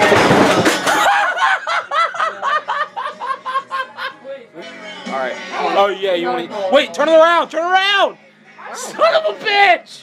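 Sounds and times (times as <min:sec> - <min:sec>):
young man laughing hard: 0:00.8 - 0:04.2.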